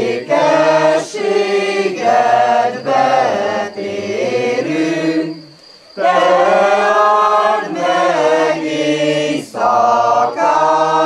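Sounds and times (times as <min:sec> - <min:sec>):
mixed choir singing a cappella: 0:00.0 - 0:11.0.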